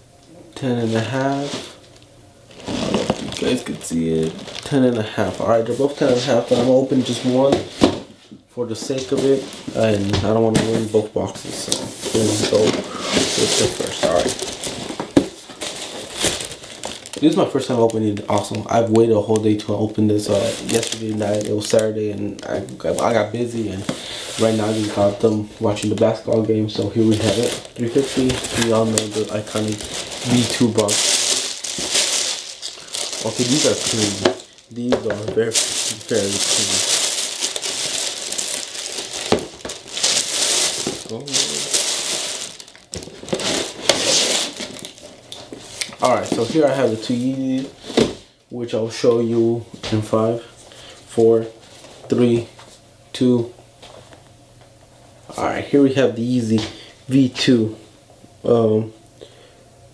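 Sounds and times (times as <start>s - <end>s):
tissue paper crinkling: 2.5s - 7.9s, 11.6s - 19.5s, 20.2s - 47.4s.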